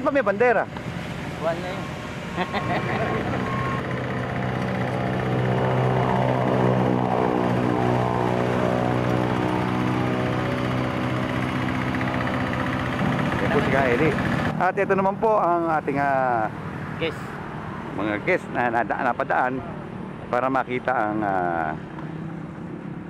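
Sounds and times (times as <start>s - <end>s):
tractor engine running: 0.7s - 14.6s.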